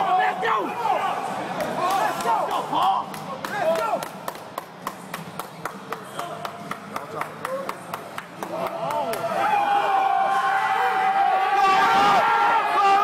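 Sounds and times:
people clapping in rhythm: 3.0 - 9.3
people shouting: 9.3 - 13.0.

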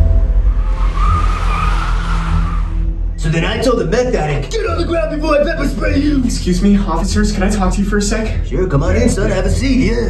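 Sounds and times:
background music with steady bass: 0.0 - 10.0
car tyres squealing: 0.5 - 3.0.

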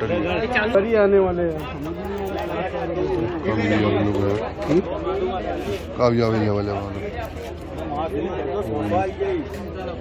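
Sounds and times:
men's voices chattering: 0.0 - 10.0.

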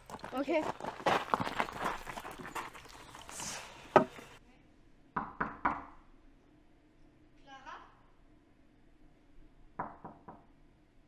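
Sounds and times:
scuffing and movement: 0.0 - 4.4
knocks on a door: 9.8 - 10.5.

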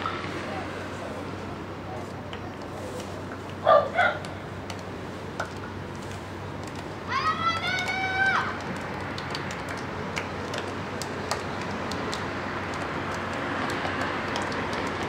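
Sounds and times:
background chatter: 0.0 - 8.7
high-pitched shout: 7.1 - 8.6.

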